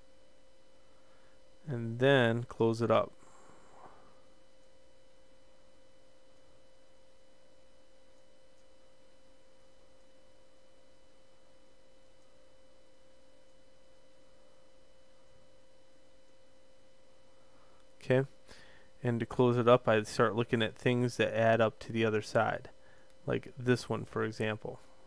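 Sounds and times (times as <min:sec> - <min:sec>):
faint steady tone: 0:00.0 - 0:25.0
low hiss: 0:00.0 - 0:25.0.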